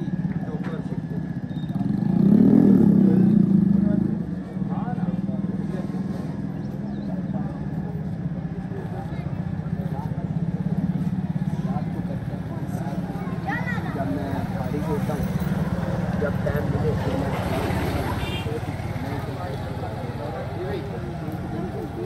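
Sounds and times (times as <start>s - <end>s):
chatter of voices: 0.0s - 22.0s.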